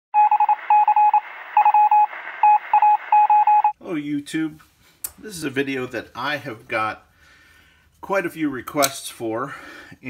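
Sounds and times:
electronic beeping: 0.2s - 3.8s.

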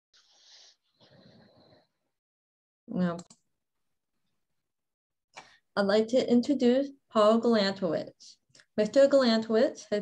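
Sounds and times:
faint breathy hisses: 0.2s - 1.8s.

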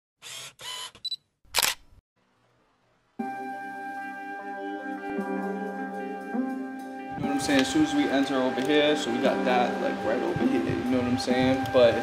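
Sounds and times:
camera shutter click: 1.5s - 1.9s.

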